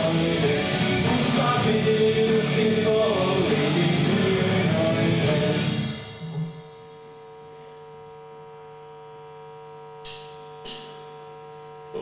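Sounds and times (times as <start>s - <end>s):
electrical mains hum: 5.7s - 12.0s.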